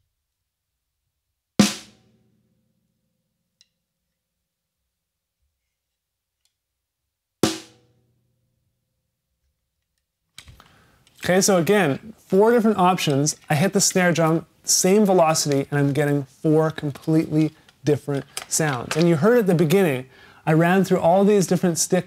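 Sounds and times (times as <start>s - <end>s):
snare drum hits: 1.6s - 2.0s, 7.5s - 7.9s.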